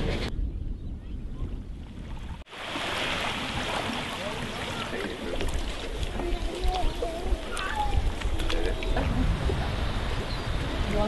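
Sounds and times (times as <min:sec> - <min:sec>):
faint voices calling: 0:04.1 - 0:09.4.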